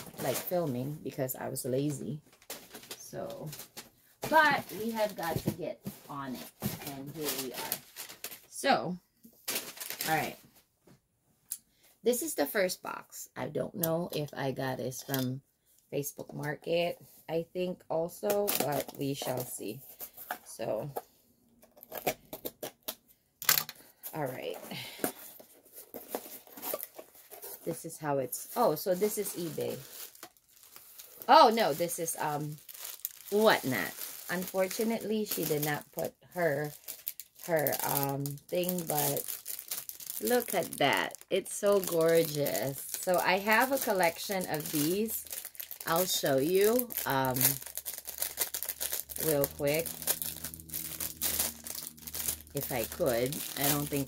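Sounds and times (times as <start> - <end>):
plastic bag crinkling: 0.0 - 8.5, 9.4 - 10.4, 28.4 - 54.0
paper packing crackle: 1.9 - 8.5, 9.4 - 10.4, 28.5 - 54.0.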